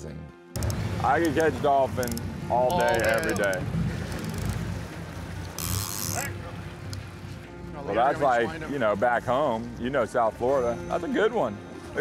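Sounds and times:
boat engine running: 0.6s - 12.0s
water rushing along hull: 0.6s - 12.0s.

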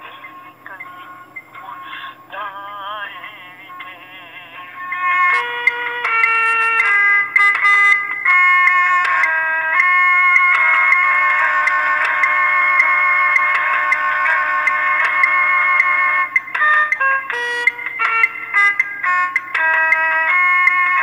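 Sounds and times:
oboe melody: 2.6s - 21.0s.

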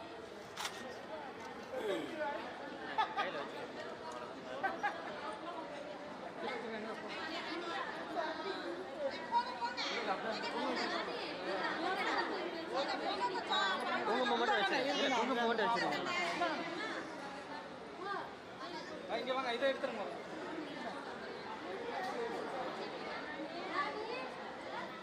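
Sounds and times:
group of people chattering: 0.0s - 25.0s.

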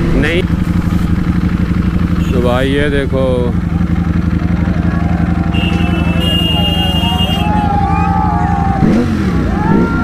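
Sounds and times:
motorcycle engine at low revs: 0.0s - 10.0s
wide rush of noise: 3.7s - 10.0s.

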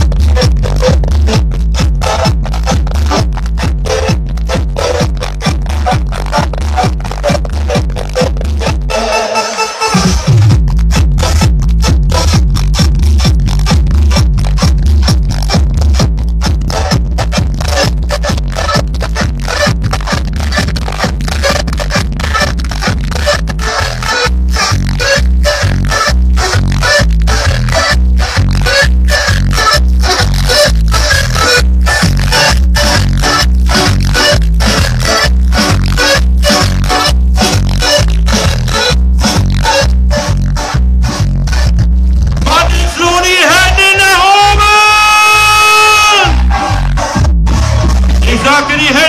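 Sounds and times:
heavy kick-drum beat: 0.0s - 9.0s, 10.0s - 49.0s
electronic dance music: 0.0s - 49.0s.

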